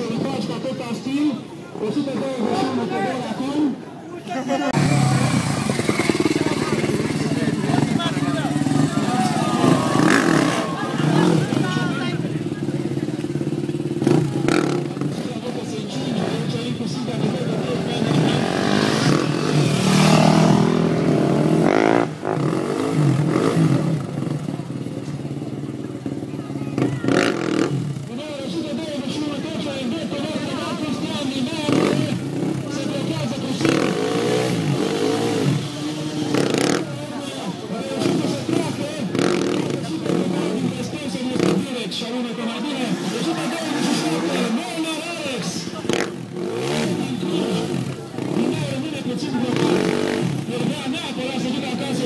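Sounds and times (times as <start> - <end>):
voices: 0.0 - 52.0
motorcycle engine revving: 4.7 - 52.0.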